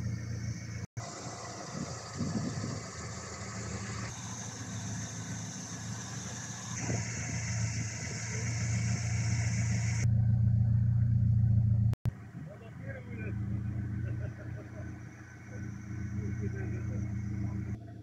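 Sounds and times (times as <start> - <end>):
car engine idling: 0.0 - 18.0.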